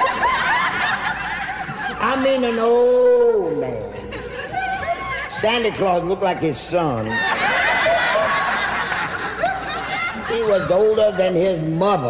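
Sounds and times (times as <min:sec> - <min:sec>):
audience laughing: 0:00.0 - 0:12.0.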